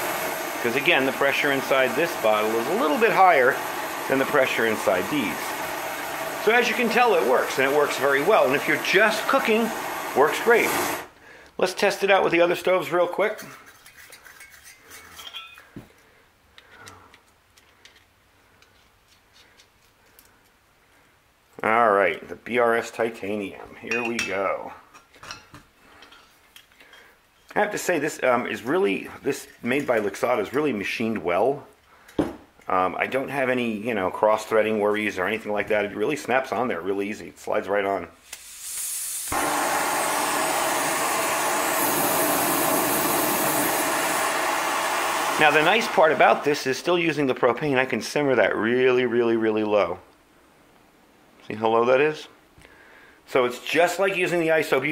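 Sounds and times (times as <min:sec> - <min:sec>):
stove burner flame hissing: 0:00.0 - 0:11.9, 0:38.2 - 0:46.8.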